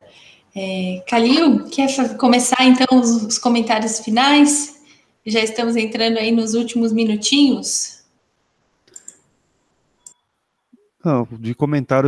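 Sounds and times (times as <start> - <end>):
cluster of clicks: 8.9 - 9.2.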